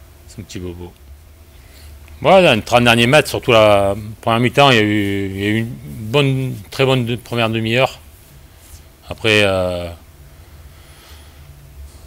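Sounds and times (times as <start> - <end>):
faint hiss: 0.0 - 12.0
low room hum: 0.0 - 12.0.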